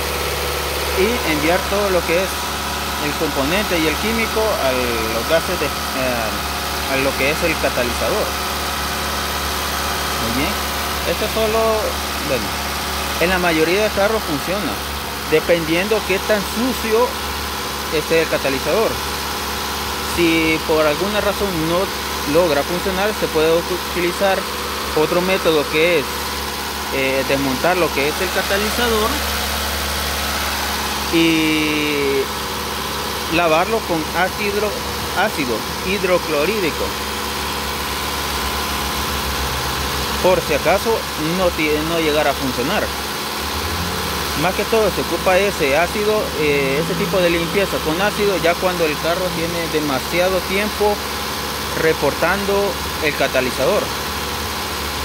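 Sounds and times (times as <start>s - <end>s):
car engine idling: 0.0s - 55.0s.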